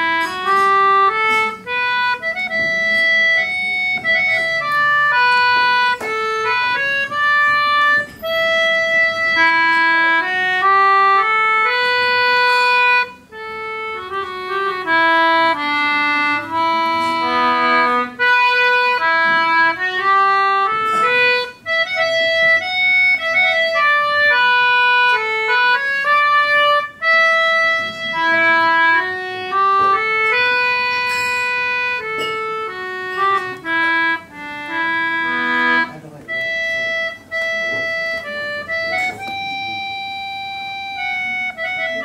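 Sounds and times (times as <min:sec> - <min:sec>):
concertina melody: 0:00.0 - 0:42.0.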